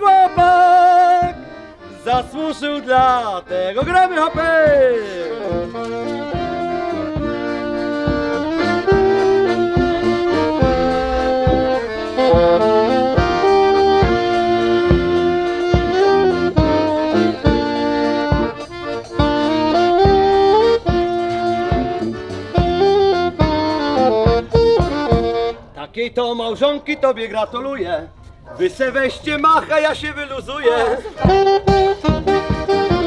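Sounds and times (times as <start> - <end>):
band playing instrumental tune: 0.0 - 25.8, 30.4 - 33.0.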